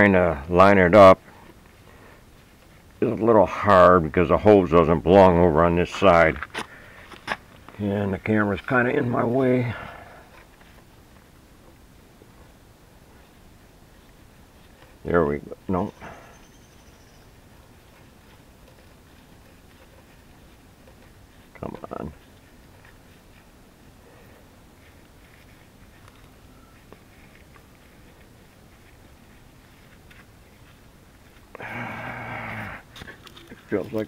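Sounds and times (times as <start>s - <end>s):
grunt-like vocal sound: 31.6s - 32.8s.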